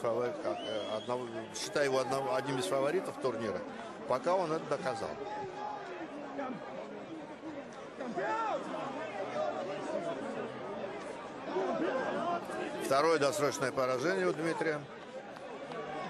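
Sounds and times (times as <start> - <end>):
arena crowd chatter: 0.0 - 16.0.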